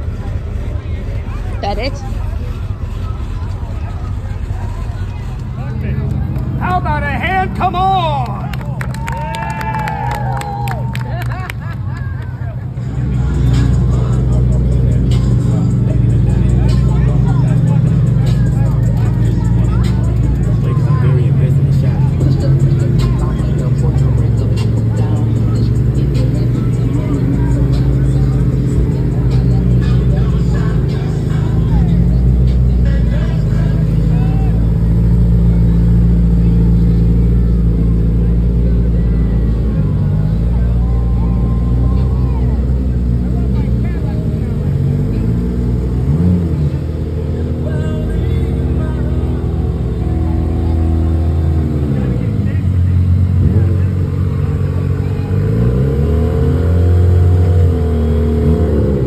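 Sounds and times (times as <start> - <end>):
vehicle engines rumbling: 0.0 - 59.0
voices: 0.0 - 59.0
music: 12.8 - 43.8, 47.2 - 52.0.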